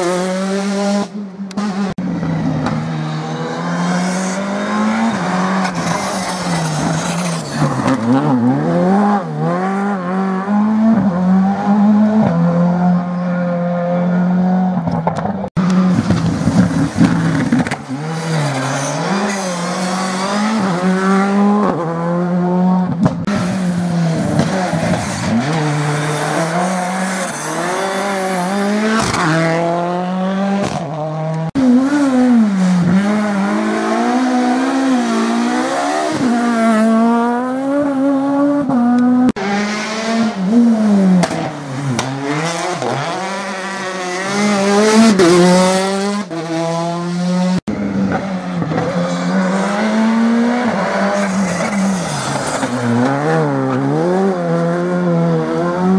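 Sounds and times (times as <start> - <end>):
rally car engines revving: 0.0 - 55.9
tyre squeal: 4.0 - 8.2, 51.1 - 53.0.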